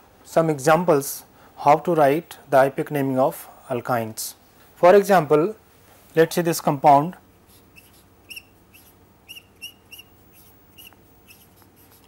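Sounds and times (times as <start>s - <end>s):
marker squeaking on whiteboard: 7.5s - 12.0s.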